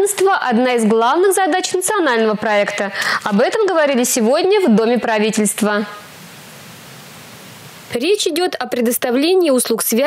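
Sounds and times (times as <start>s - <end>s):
steady hiss: 2.7s - 8.4s.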